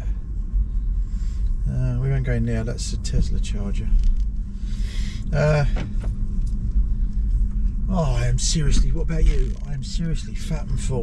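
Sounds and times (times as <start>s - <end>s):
road rumble inside car: 0.0s - 11.0s
person speaking: 7.9s - 11.0s.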